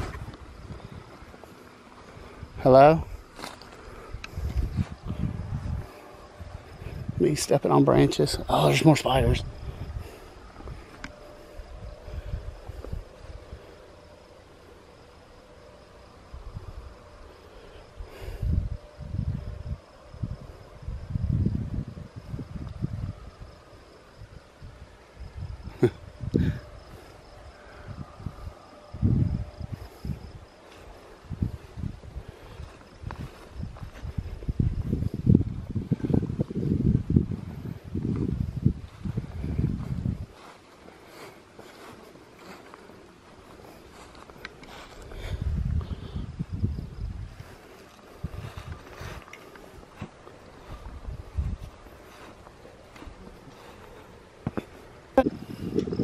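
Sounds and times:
faint insect drone: 0.0s - 56.0s
footsteps on grass: 3.2s - 7.2s, 31.8s - 36.4s, 38.2s - 45.8s, 47.2s - 55.2s.

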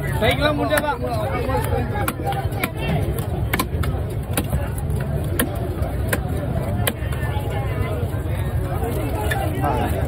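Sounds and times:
market crowd voices: 0.0s - 10.0s
knife chopping fish on wood: 3.5s - 7.1s.

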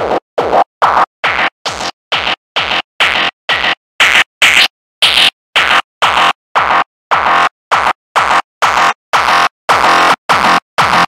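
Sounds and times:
distorted kick drum looping: 0.0s - 11.0s.

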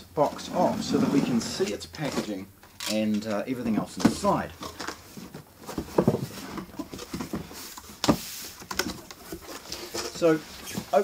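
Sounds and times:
cardboard scraping and rubbing: 0.3s - 2.3s.

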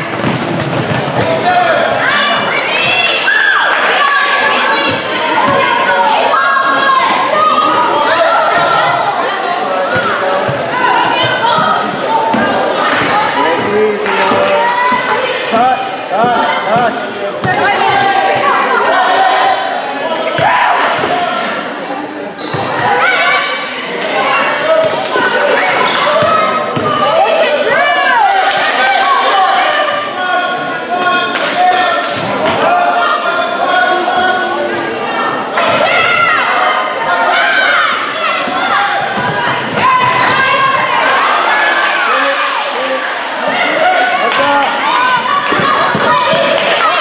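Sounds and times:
players and spectators calling out: 0.0s - 47.0s.

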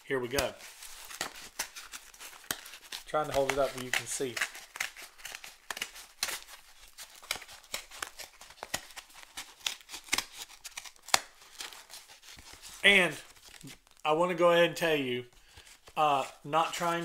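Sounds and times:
paperboard envelope crackling: 0.3s - 14.0s
envelope snap: 1.0s - 6.5s.

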